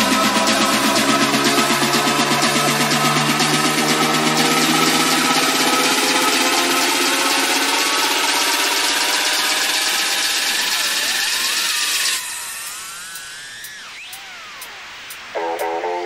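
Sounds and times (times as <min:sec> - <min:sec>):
quadcopter motors whining: 0:00.0 - 0:16.0.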